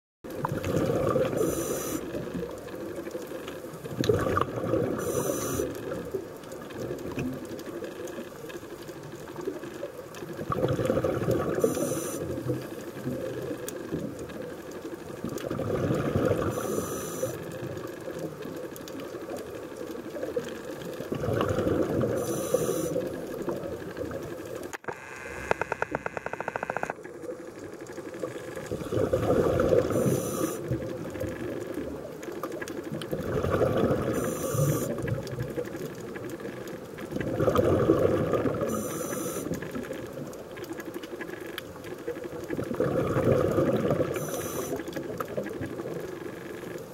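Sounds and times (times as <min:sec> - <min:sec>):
exhaled bubbles rushing: 0:00.3 - 0:02.9, 0:03.8 - 0:06.2, 0:10.2 - 0:13.9, 0:15.2 - 0:16.7, 0:20.1 - 0:24.6, 0:27.3 - 0:32.1, 0:32.8 - 0:38.9, 0:42.2 - 0:46.2
diver breathing through regulator: 0:01.3 - 0:02.1, 0:05.0 - 0:05.7, 0:11.6 - 0:12.3, 0:16.4 - 0:17.4, 0:22.2 - 0:23.0, 0:29.0 - 0:30.7, 0:34.1 - 0:35.0, 0:38.7 - 0:39.5, 0:44.2 - 0:44.9.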